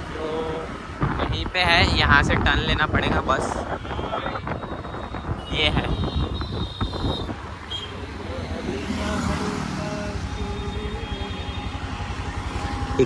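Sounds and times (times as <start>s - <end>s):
road rumble: 0.0s - 13.0s
wind buffeting microphone: 0.6s - 7.7s.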